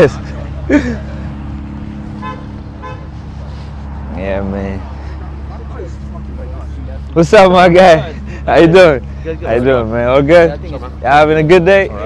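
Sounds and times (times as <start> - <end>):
car horn chirps: 2.2 - 3.1.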